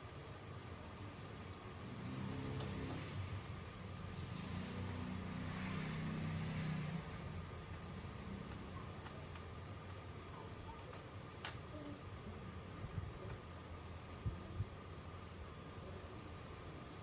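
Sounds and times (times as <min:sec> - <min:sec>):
motor vehicle passing: 0:01.8 - 0:08.7.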